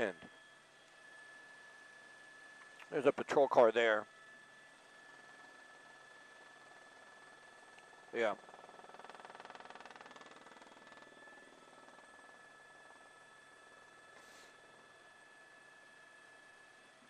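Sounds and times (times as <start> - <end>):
helicopter cabin hum with whine: 0.0 - 17.0.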